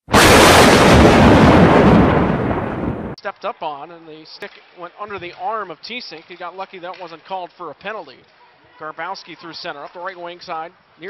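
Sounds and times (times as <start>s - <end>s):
thunderclap rumbling: 0.0s - 3.2s.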